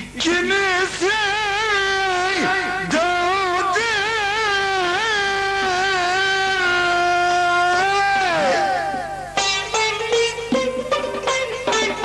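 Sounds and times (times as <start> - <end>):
man singing ornamented phrase: 0.0 - 9.4
plucked string notes: 5.6 - 12.0.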